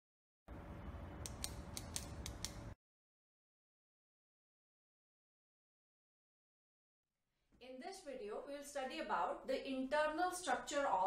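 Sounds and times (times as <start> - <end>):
sharp high clicks: 1.2 - 2.8.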